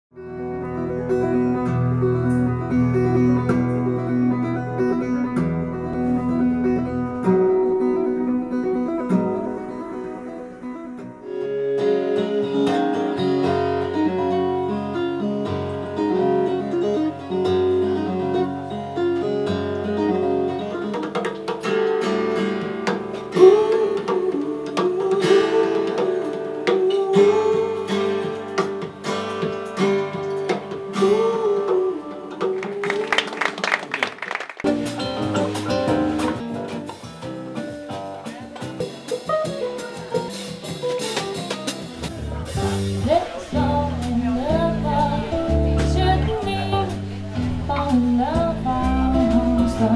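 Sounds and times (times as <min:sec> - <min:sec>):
acoustic guitar music: 0:00.1 - 0:34.0, 0:34.6 - 0:49.9.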